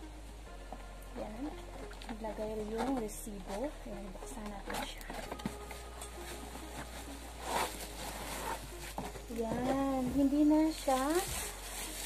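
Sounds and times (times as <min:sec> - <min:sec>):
plastic wrap rustling: 0:01.1 - 0:12.0
cardboard box being cut open: 0:07.4 - 0:10.0.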